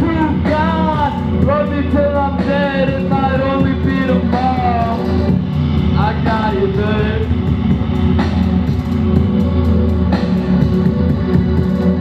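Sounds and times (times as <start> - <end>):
live rock music: 0.0 - 12.0.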